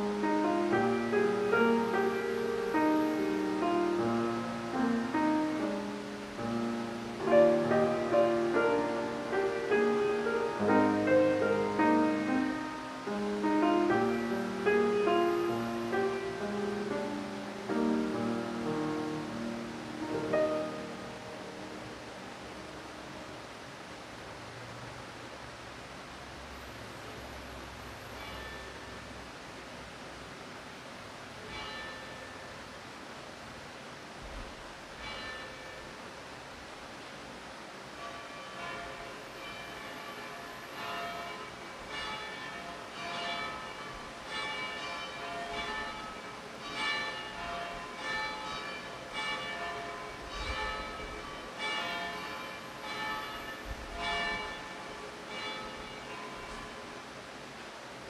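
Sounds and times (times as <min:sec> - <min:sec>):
church bells ringing: 0:00.0 - 0:22.1, 0:28.2 - 0:28.8, 0:31.4 - 0:32.5, 0:35.0 - 0:35.9, 0:38.0 - 0:57.0.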